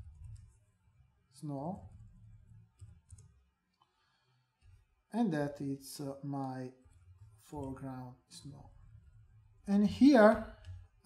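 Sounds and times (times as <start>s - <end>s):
keyboard and mouse clicks: 0.0s - 0.6s, 1.8s - 3.4s
low room hum: 0.0s - 11.0s.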